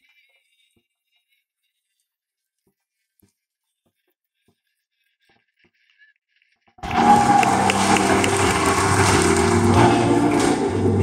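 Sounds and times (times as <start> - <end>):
men's chorus singing in harmony: 6.9 - 11.0.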